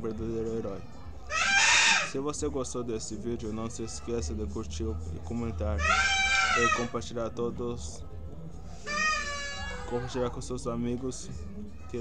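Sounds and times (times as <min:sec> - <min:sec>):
high-pitched animal call: 0:01.3 - 0:02.2, 0:05.8 - 0:06.9, 0:08.8 - 0:10.2.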